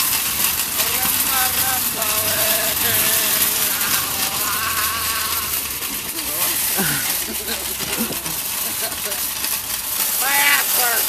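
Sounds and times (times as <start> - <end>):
shopping cart rattling on gravel: 0.0 - 11.0.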